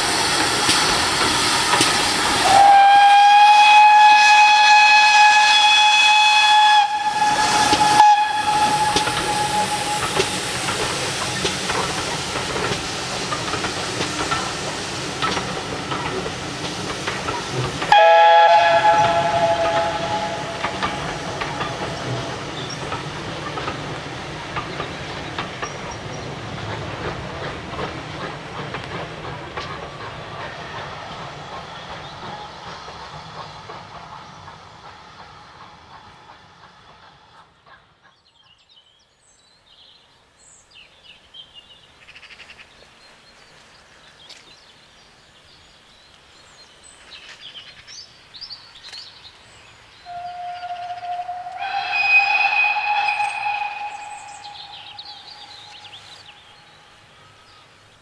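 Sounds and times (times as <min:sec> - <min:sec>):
steam whistle: 0:02.4 - 0:10.4, 0:17.9 - 0:22.1, 0:50.0 - 0:56.3
coach wheels rolling on rails: 0:05.3 - 0:37.8.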